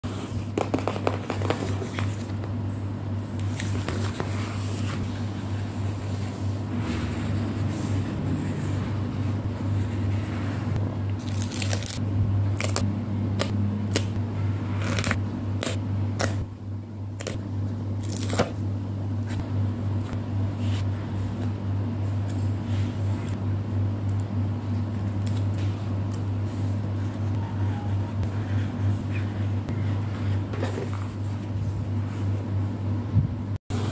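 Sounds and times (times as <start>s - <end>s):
steady low hum: 0.0s - 33.9s
stickers being peeled: 11.2s - 12.0s, 12.6s - 12.8s.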